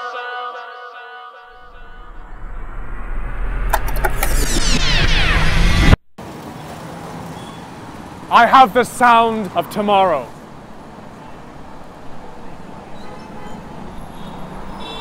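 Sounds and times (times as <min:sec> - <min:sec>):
high falling sweeps: 0:01.5 - 0:06.0
noisy rumbling swell: 0:01.5 - 0:06.0
street traffic hum: 0:06.2 - 0:15.0.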